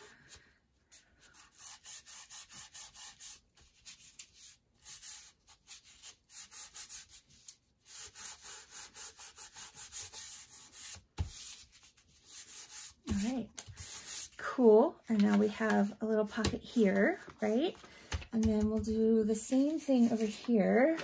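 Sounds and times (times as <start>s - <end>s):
plastic ruler scraping paper: 19.6s - 21.0s.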